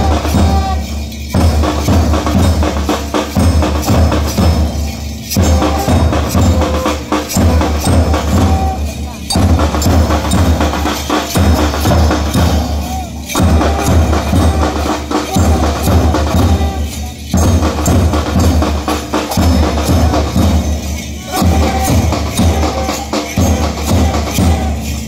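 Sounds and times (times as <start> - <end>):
marching band percussion: 0.0 - 25.0.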